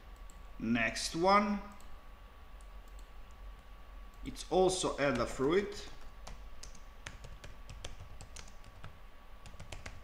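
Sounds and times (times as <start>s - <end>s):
keyboard typing: 5.1s - 10.0s.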